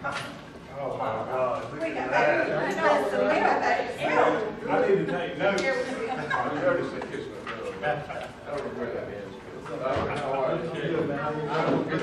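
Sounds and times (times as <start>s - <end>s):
overlapping conversation: 0.0s - 12.0s.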